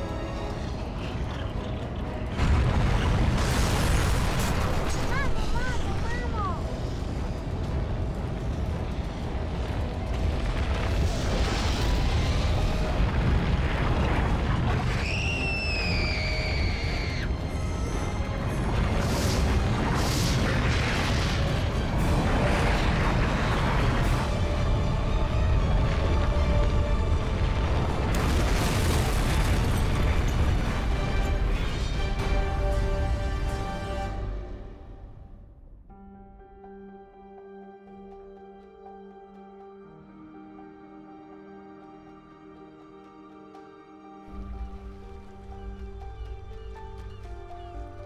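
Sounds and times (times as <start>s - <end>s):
deep continuous rumble: 0.0s - 35.9s
dramatic music: 0.0s - 48.0s
booms and blasts: 2.2s - 33.7s.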